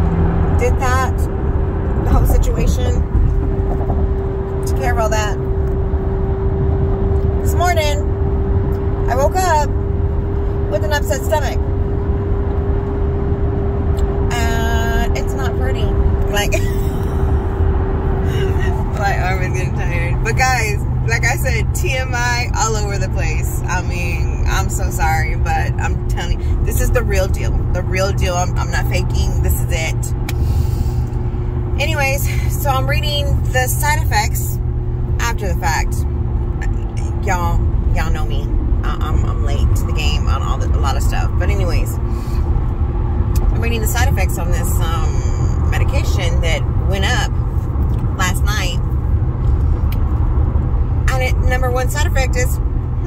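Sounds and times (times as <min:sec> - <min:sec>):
car road and engine rumble: 0:00.0 - 0:53.0.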